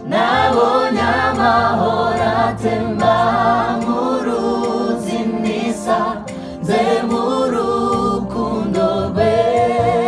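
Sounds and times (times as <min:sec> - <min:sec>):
choir singing gospel: 0:00.0 - 0:10.0.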